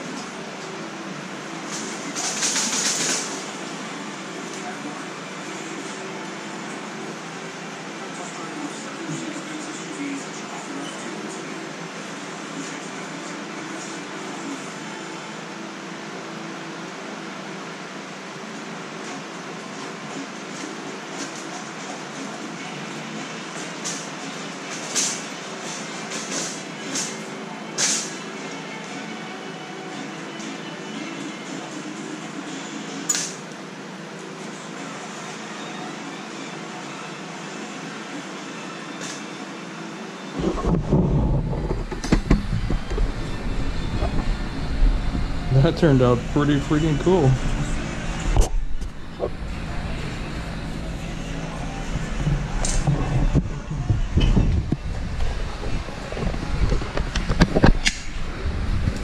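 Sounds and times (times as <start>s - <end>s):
steady background hum: 0.0s - 59.0s
wagon rumbling and knocking: 40.4s - 45.3s.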